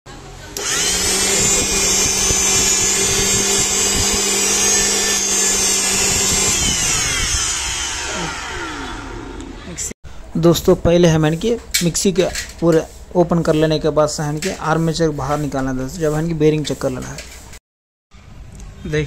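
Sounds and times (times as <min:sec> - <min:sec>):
mixer grinder motor whining: 0:00.5 - 0:09.7.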